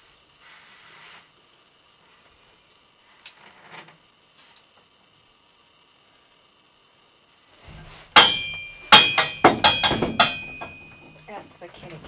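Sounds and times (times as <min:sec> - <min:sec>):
hooves clanging on metal trailer: 0:07.7 - 0:12.0
metallic ring: 0:08.1 - 0:11.4.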